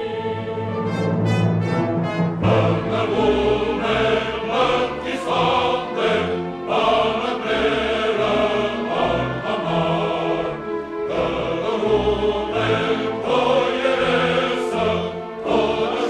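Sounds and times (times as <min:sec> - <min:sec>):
choir singing: 0:00.0 - 0:16.0
symphony orchestra: 0:00.0 - 0:16.0.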